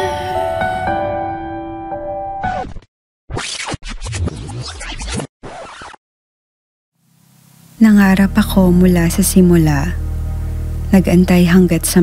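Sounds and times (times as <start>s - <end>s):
glitchy scratching noise bursts: 3.3s - 6.0s.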